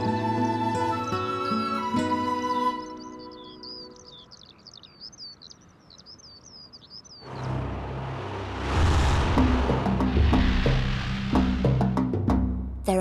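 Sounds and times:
bird chirping and twittering: 0.0 - 7.6
rush of noise: 7.3 - 12.2
low drum beats: 8.5 - 12.8.

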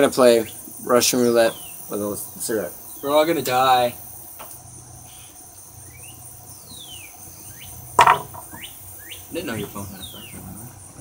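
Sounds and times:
insects chirring: 0.0 - 11.0.

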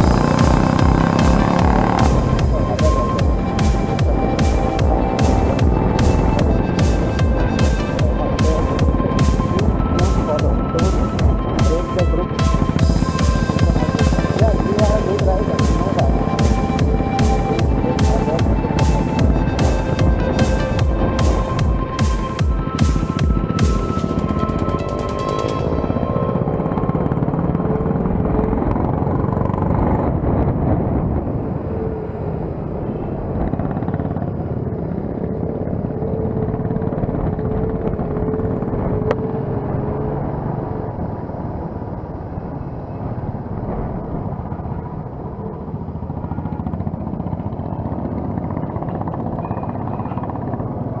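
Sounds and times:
motorcycle engine drone: 0.0 - 51.0
wind rush on microphone: 25.8 - 48.4.

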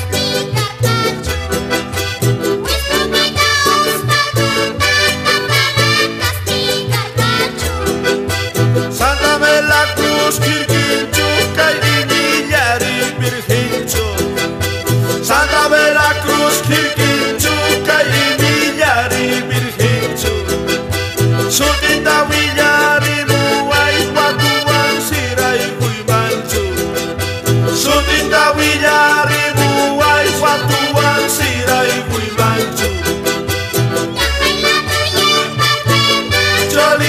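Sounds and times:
piano accordion melody: 0.0 - 37.0
strummed charango and guitar: 0.0 - 37.0.

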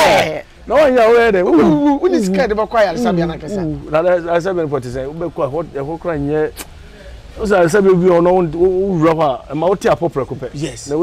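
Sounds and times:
man talking: 0.0 - 6.6, 7.4 - 11.0.

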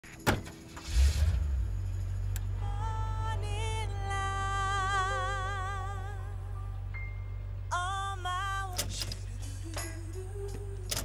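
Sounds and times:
car engine starting and idling: 0.1 - 11.0
ignition key clicking: 8.7 - 9.3, 10.8 - 11.0.

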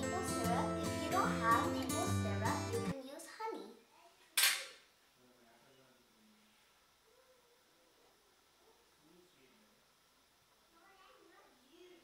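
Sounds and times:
faint child's voice: 7.0 - 8.1.

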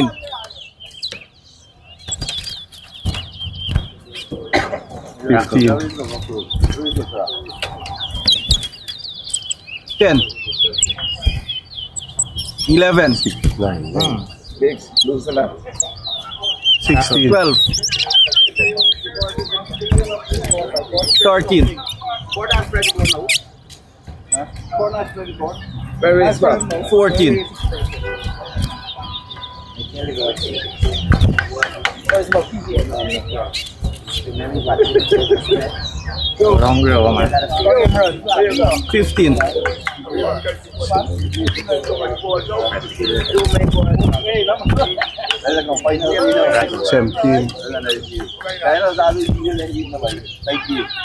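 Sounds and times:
low voices: 0.0 - 1.0, 3.0 - 51.0
finch singing high warbled notes: 0.0 - 51.0
other birds: 0.0 - 51.0.

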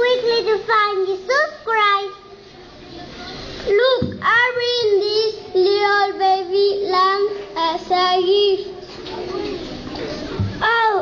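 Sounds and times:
child singing: 3.7 - 8.7.

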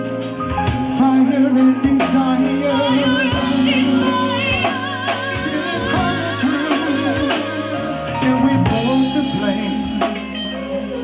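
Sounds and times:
r and b band playing: 0.0 - 11.0
man singing: 0.6 - 11.0.

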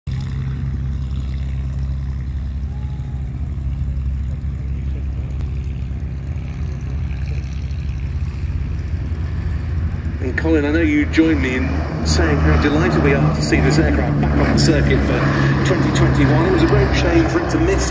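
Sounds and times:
distant propeller plane drone: 0.1 - 17.9.

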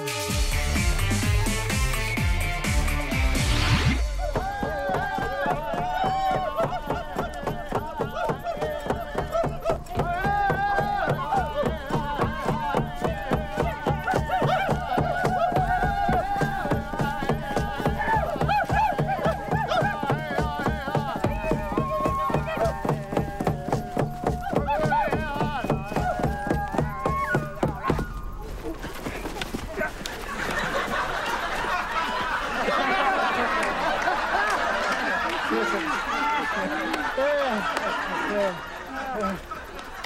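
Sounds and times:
frame drums beating: 0.3 - 34.4
men chanting: 4.2 - 28.3.

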